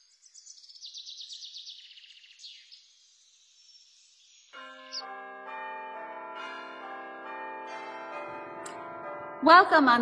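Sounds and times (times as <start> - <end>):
church bells ringing: 4.5 - 10.0.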